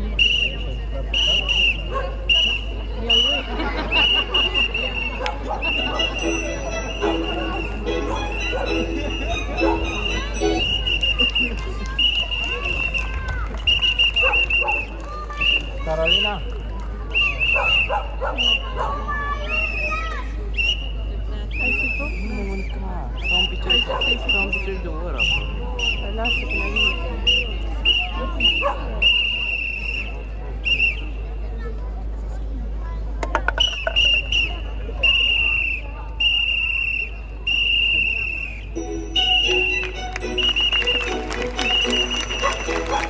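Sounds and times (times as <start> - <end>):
high steady whistle tone: 0.0 - 3.4, 4.0 - 14.7, 33.5 - 43.0
children chattering: 0.0 - 29.5, 30.1 - 33.6, 38.7 - 43.0
crowd voices: 0.0 - 43.0.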